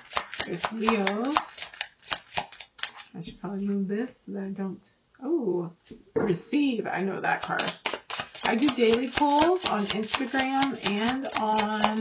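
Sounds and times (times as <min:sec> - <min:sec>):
cards being shuffled: 0:00.0 - 0:03.1, 0:07.4 - 0:12.0.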